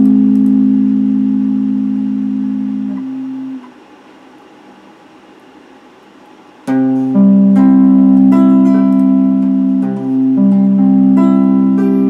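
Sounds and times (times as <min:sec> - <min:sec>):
electric guitar chord ringing: 0:00.0 - 0:03.6, 0:06.7 - 0:12.0
low background hiss: 0:00.0 - 0:12.0.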